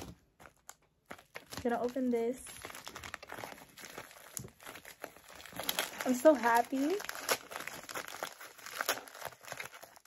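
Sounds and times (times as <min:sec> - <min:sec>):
plastic mailer crinkling: 0:00.0 - 0:10.0.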